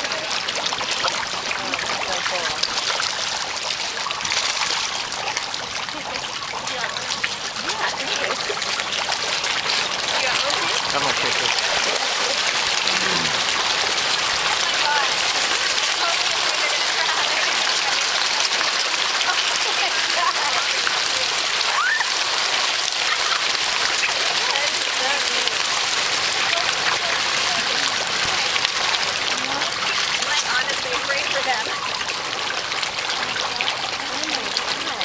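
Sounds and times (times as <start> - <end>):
fish splashing water surface: 0.0 - 35.0.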